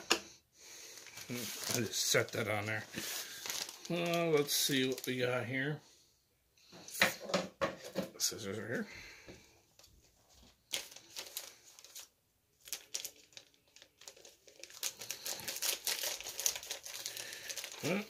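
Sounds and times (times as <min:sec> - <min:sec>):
packaging crinkling: 0:00.9 - 0:05.4, 0:10.4 - 0:18.0.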